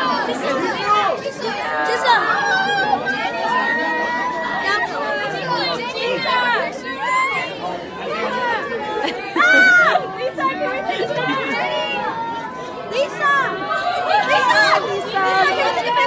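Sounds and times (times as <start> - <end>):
crowd talking and calling out: 0.0 - 16.0.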